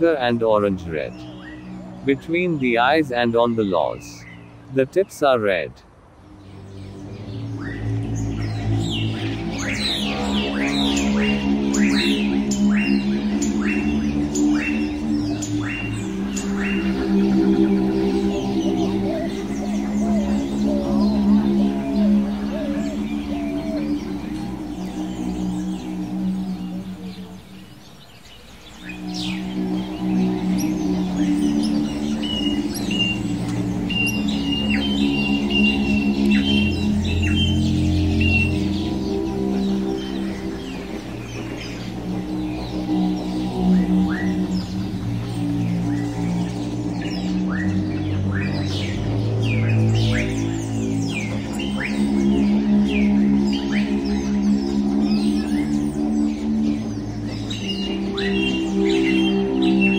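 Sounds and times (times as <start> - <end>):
slow sustained chords music: 0.0 - 59.9
small birds chirping: 0.0 - 59.9.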